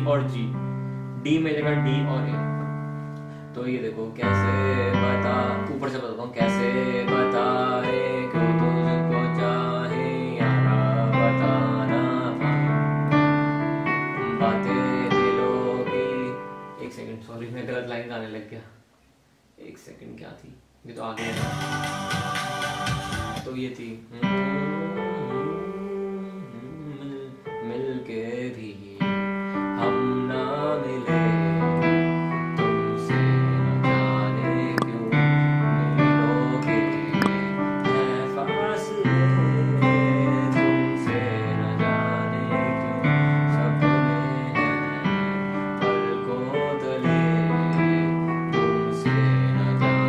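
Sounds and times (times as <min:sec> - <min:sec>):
recorded song through a phone: 0:21.2 - 0:23.6, 0:33.6 - 0:44.9
digital keyboard chord: 0:21.2 - 0:25.7, 0:29.1 - 0:50.0.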